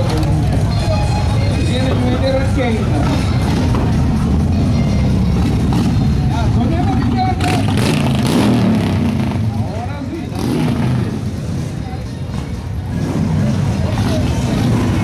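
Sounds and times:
people talking: 0.0s - 8.0s, 9.4s - 15.0s
motorcycles riding past: 2.5s - 15.0s.

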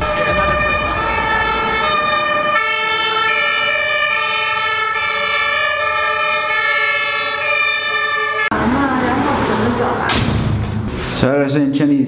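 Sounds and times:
fire engine two-tone siren: 0.0s - 10.1s.

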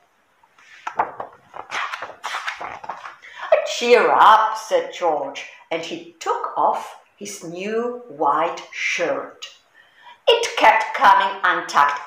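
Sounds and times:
book page turning: 0.6s - 3.2s.

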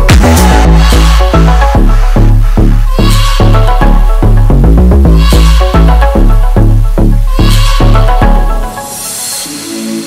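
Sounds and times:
instrumental music with deep bass: 0.0s - 10.0s.

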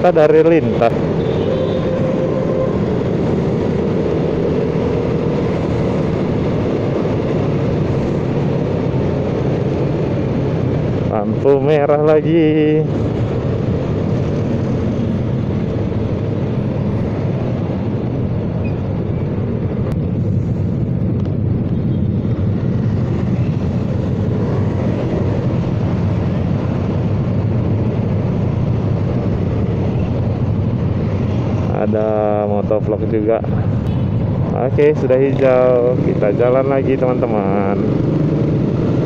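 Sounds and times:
motorcycle engines rumbling: 0.0s - 39.0s
traffic: 0.0s - 39.0s.

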